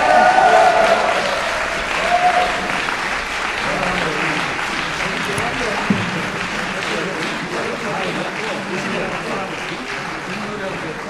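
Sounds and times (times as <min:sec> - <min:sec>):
audience applauding: 0:00.0 - 0:11.0
crowd voices: 0:00.0 - 0:11.0.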